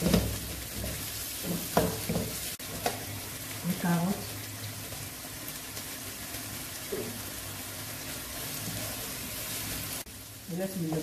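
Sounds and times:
vegetables sizzling in frying pan: 0:00.0 - 0:11.0.

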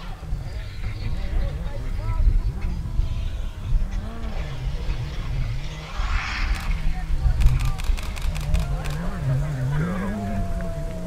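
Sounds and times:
rally car engine revving: 0:00.0 - 0:11.0.

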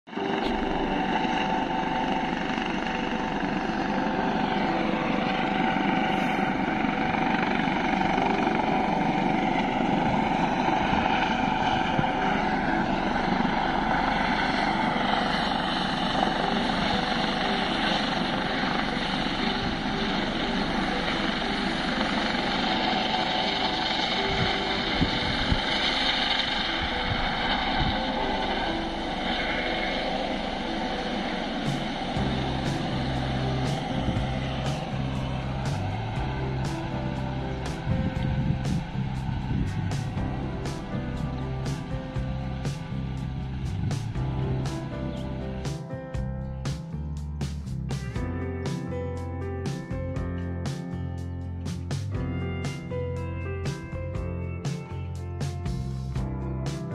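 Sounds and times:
helicopter flying past: 0:00.1 - 0:56.9.

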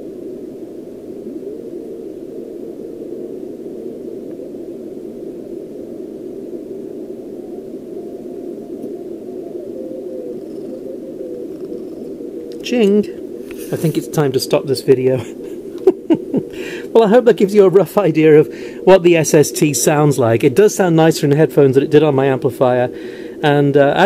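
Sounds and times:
faint steady radio tone: 0:00.0 - 0:24.0
radio receiver hiss: 0:00.0 - 0:24.0.

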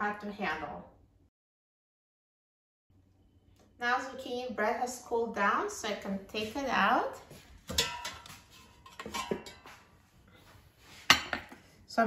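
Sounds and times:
metal pan knocking on basket: 0:07.7 - 0:08.3.

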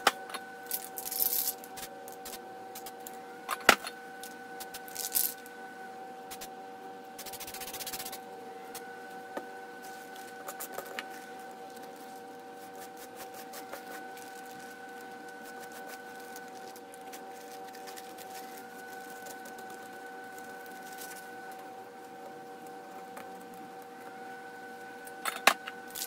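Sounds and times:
high-pitched electrical hum: 0:00.0 - 0:26.0
plastic bag crinkling: 0:00.7 - 0:01.7, 0:04.8 - 0:05.4, 0:09.9 - 0:21.4.

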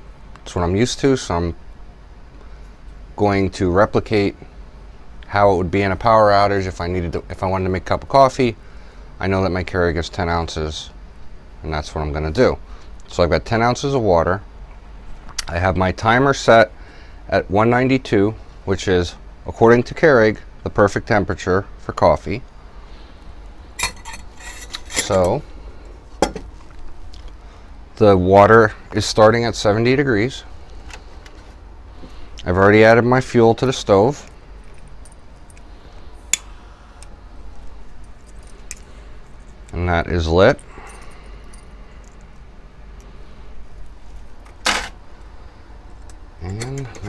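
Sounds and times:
man speaking: 0:25.0 - 0:25.5, 0:28.0 - 0:30.5, 0:32.4 - 0:34.3, 0:39.7 - 0:40.6, 0:46.4 - 0:47.0.

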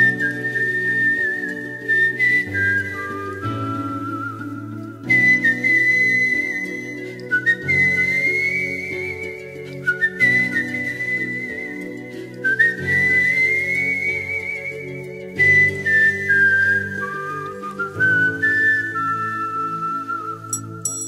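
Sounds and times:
whistle-like melody with vibrato: 0:00.0 - 0:21.0.

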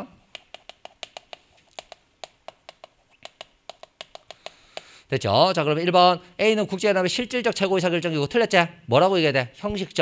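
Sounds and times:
chalk tapping on chalkboard: 0:00.3 - 0:04.9.

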